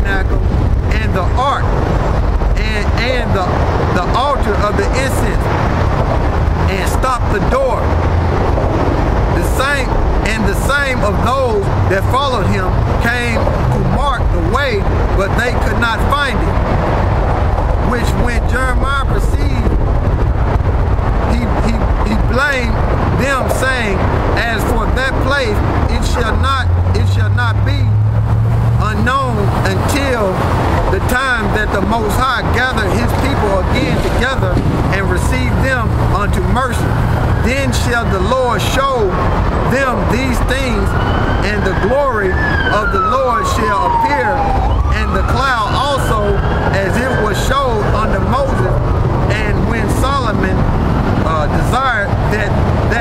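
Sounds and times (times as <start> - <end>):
man talking loudly: 0.0 - 1.8, 2.6 - 5.5, 6.6 - 7.9, 9.3 - 16.6, 17.8 - 19.8, 21.2 - 28.0, 28.8 - 53.0
street traffic: 0.0 - 53.0
truck engine hum: 0.0 - 53.0
wind rumble on microphone: 0.0 - 53.0.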